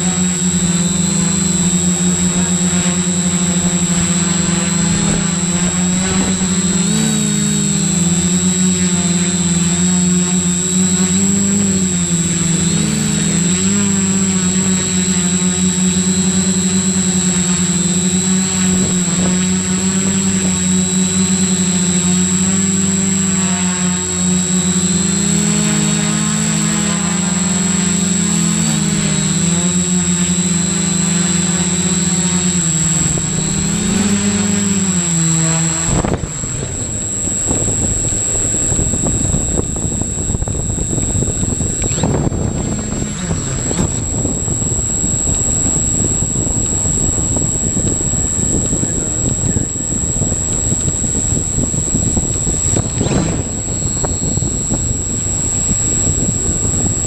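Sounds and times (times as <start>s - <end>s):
high whine: 0.0s - 57.0s
quadcopter propellers buzzing: 0.0s - 57.0s
rough rushing noise: 0.0s - 57.0s.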